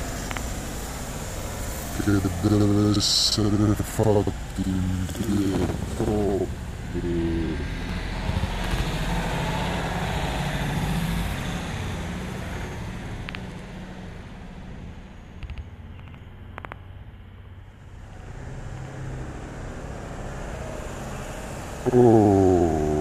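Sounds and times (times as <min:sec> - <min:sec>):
vehicle engine and tyre noise: 0:00.0 - 0:23.0.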